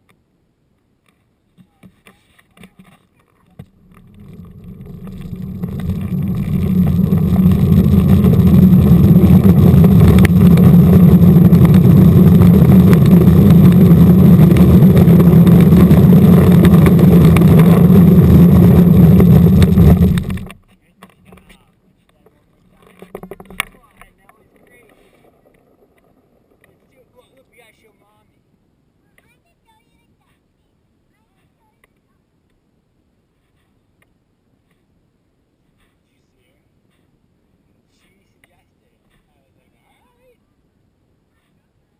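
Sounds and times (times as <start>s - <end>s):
small wheels rolling over asphalt: 2.5s - 28.1s.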